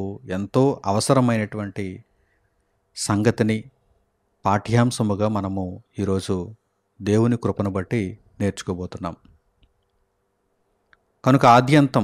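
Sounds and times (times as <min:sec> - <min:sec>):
man speaking into a microphone: 0:00.0 - 0:02.1, 0:03.0 - 0:03.8, 0:04.4 - 0:09.3, 0:11.2 - 0:12.0.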